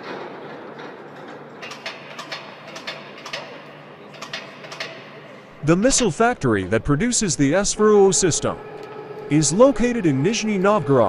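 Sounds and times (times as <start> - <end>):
sharp metallic clicks and knocks: 0.0 - 5.2
steady low hum: 2.6 - 11.0.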